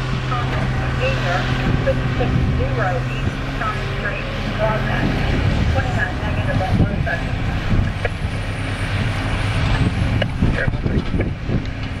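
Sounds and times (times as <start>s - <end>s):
diesel engine running under load: 0.0s - 12.0s.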